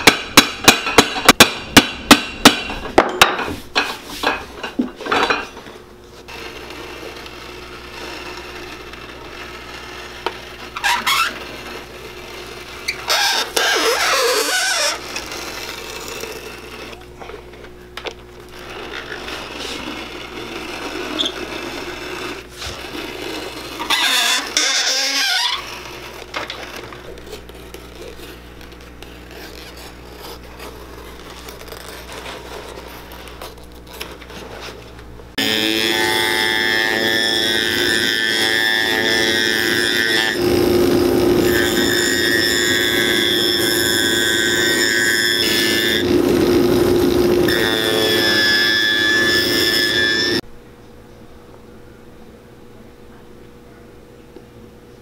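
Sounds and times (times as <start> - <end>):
scraping on a sole: 18.6 - 34.8.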